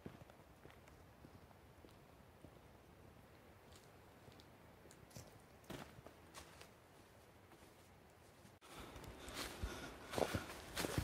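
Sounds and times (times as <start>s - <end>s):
footsteps on dry leaves: 8.8s - 11.0s.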